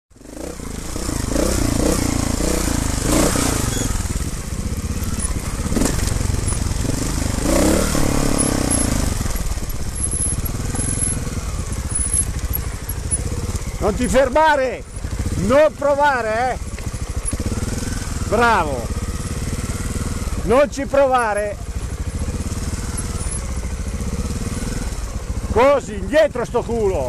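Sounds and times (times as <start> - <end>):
motorcycle engines revving: 0.1 - 27.0.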